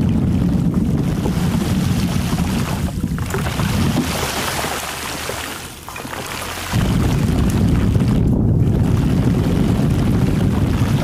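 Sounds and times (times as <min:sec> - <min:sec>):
heavy low rumble: 0:05.0 - 0:11.0.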